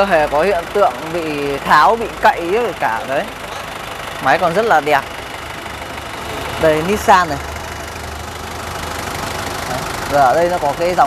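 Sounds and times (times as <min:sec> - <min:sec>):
forklift engine idling: 0:00.0 - 0:11.0.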